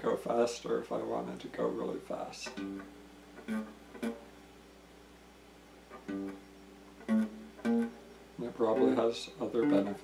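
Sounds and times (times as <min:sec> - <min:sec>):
faint low hum: 0:00.0 - 0:10.0
electric guitar note ringing: 0:02.6 - 0:04.3, 0:05.9 - 0:10.0.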